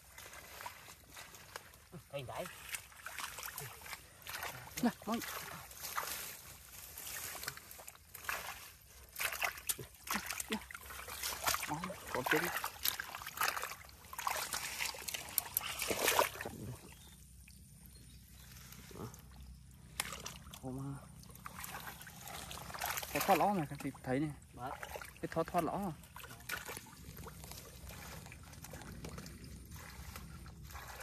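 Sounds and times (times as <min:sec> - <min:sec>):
hands splashing in shallow water: 0:02.4 - 0:17.0, 0:19.8 - 0:20.6, 0:21.2 - 0:23.9, 0:26.0 - 0:31.0.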